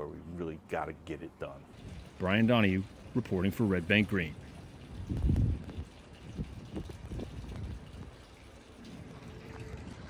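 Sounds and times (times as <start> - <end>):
water lapping against dock: 1.4 - 10.0.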